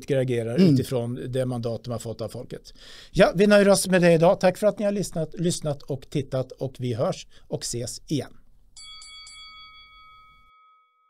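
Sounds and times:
bell-like chime ringing: 8.8 - 11.0.

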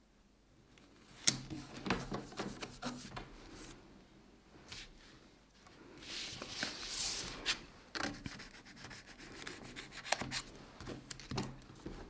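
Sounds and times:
hands rubbing paper: 1.6 - 3.8, 6.0 - 10.5.

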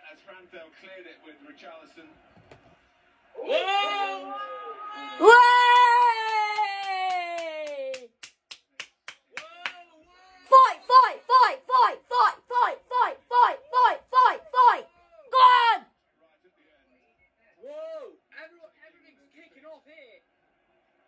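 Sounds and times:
man clapping hands: 5.7 - 9.8
high-pitched vocal yelps: 10.5 - 15.8.

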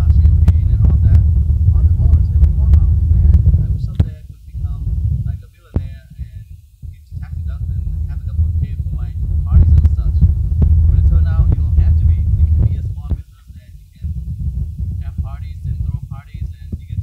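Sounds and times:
person talking: 0.0 - 14.1, 15.0 - 17.0
loud steady low rumble: 0.0 - 17.0.

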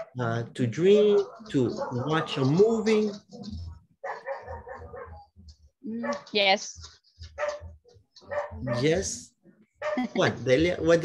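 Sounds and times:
dog barking: 0.0 - 0.2, 0.8 - 5.4, 6.0 - 6.4, 7.3 - 9.0, 9.8 - 10.1.

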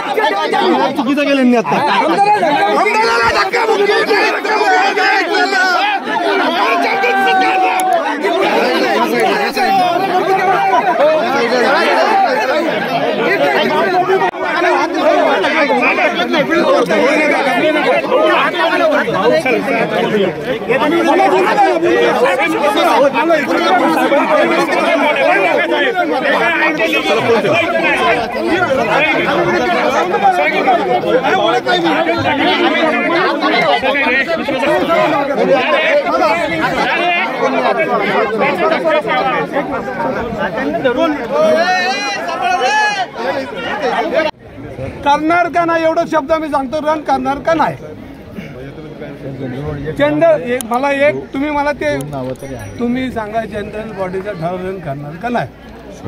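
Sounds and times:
men arguing and shouting: 0.0 - 56.0.

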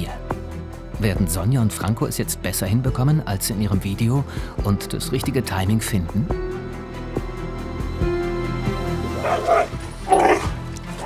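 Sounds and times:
dog barking: 9.2 - 10.6.

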